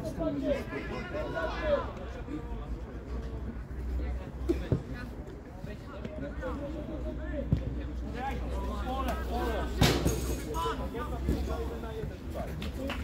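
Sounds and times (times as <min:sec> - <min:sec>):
players shouting: 0:00.1 - 0:02.4.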